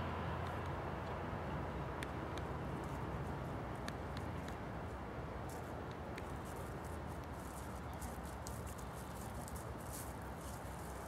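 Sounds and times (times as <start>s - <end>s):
low outdoor background noise: 0.0s - 11.0s
footsteps on grass and leaves: 5.4s - 11.0s.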